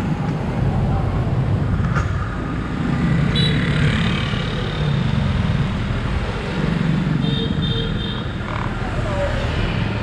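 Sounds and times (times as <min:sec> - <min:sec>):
motorbikes and car passing: 0:00.0 - 0:10.0.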